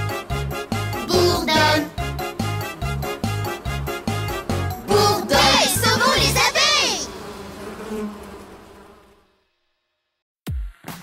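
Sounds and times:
cartoon bees buzzing: 0.0s - 9.5s.

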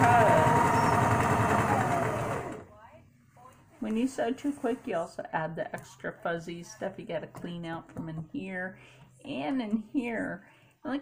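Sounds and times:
sewing machine running fast: 0.0s - 2.7s.

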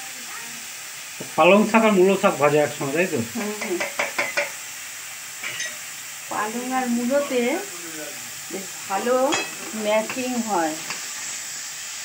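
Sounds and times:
spinach sizzling in a wok: 0.0s - 12.0s.

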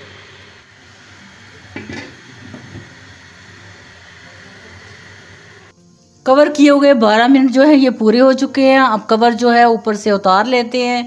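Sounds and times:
pot lid clunk: 1.6s - 3.0s.

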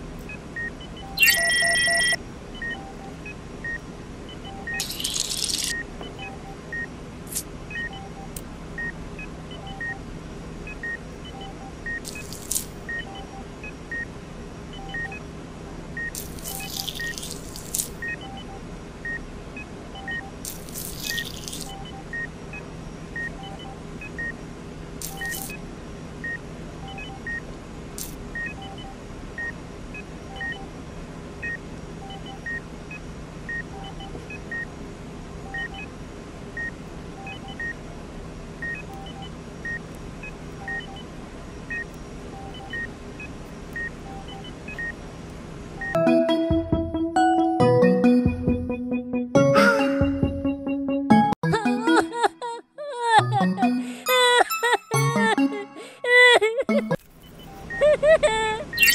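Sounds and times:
heart monitor beeping: 10.7s - 14.1s, 25.0s - 25.6s, 40.5s - 41.1s, 41.7s - 42.9s, 56.7s - 58.9s.

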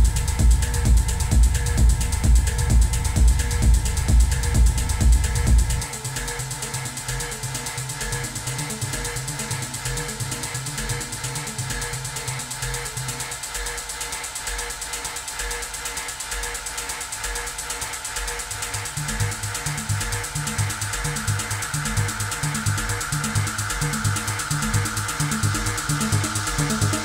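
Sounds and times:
bass line: 0.0s - 13.0s, 18.5s - 27.0s
fast high percussion: 0.0s - 27.0s
techno kick drum: 0.0s - 27.0s.

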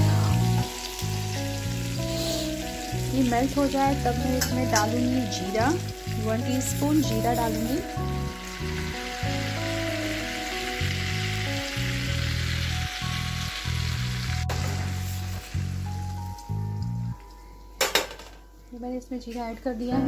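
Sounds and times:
butter and oil sizzling: 0.0s - 17.6s.

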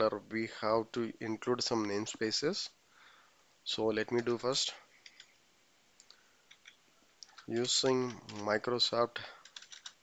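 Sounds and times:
keyboard keystrokes: 9.4s - 10.0s.

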